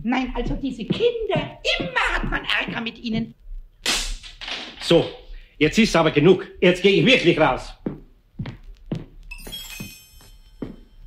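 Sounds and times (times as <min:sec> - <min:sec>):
heavy footsteps: 0:00.0 - 0:03.0, 0:07.7 - 0:11.0
ringing bell-like tone: 0:09.3 - 0:11.0.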